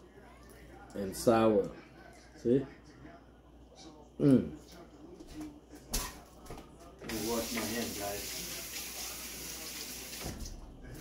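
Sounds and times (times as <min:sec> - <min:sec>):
tap water running: 0:07.0 - 0:11.0.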